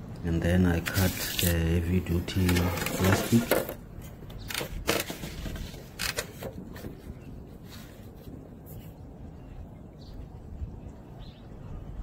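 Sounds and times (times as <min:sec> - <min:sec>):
plastic sheeting rustling: 0:00.8 - 0:03.6.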